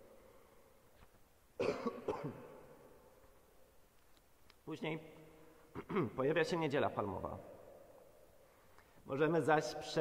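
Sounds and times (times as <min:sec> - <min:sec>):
person coughing: 0:01.6 - 0:02.6, 0:05.7 - 0:06.2.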